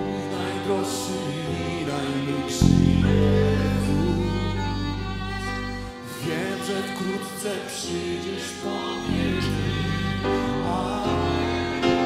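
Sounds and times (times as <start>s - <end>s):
voices singing held notes: 0.0s - 4.8s, 6.1s - 12.0s
worship band playing: 0.0s - 12.0s
deep low notes: 2.6s - 6.0s, 9.1s - 11.6s.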